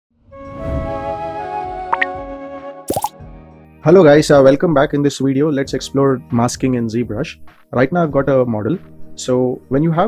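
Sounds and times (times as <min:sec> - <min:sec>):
rising sweep: 0:00.3 - 0:02.6
pop sound effect: 0:01.9 - 0:02.2, 0:02.9 - 0:03.2.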